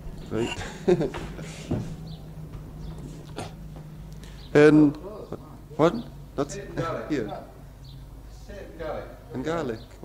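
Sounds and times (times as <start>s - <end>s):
low hum: 0.0s - 9.4s.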